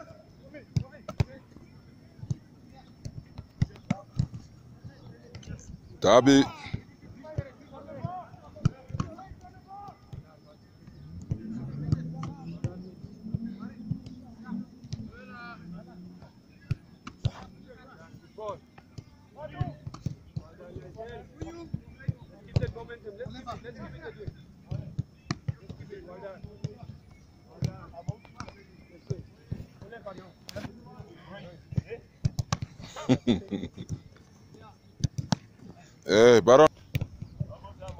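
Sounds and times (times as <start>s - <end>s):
men talking: 0.0s - 16.5s, 17.2s - 32.2s, 32.8s - 35.0s, 35.6s - 36.7s, 37.4s - 37.9s
football kicked and caught thuds: 31.7s - 32.8s, 35.0s - 35.5s, 36.8s - 37.9s.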